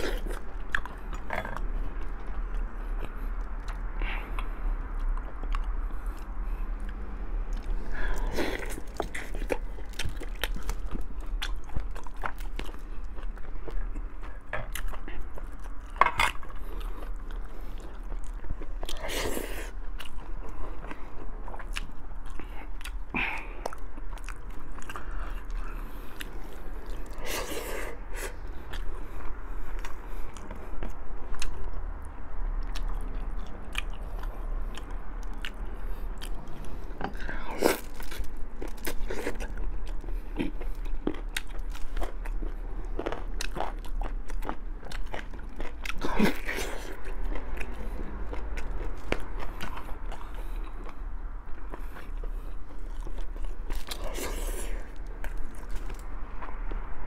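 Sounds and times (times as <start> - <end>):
person chewing meat: 0.0 - 57.0.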